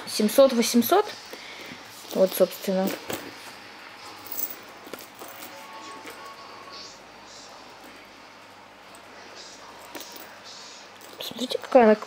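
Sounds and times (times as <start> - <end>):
metal chain clicking and rustling: 2.0 - 3.2, 4.0 - 6.4, 9.8 - 10.3, 10.9 - 11.8.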